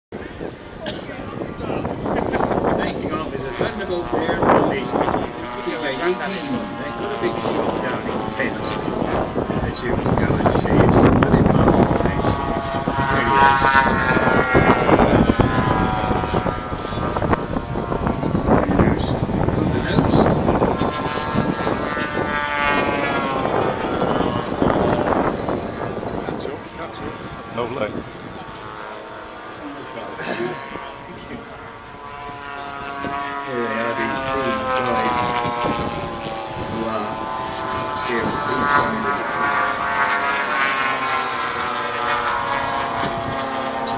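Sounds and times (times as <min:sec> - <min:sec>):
steady rushing noise: 0:00.1 - 0:43.9
people talking: 0:00.2 - 0:15.4, 0:18.4 - 0:20.3, 0:26.2 - 0:28.6, 0:29.6 - 0:31.7, 0:33.4 - 0:35.5, 0:36.6 - 0:37.2, 0:38.0 - 0:39.6
model airplane engine drone: 0:00.2 - 0:43.9.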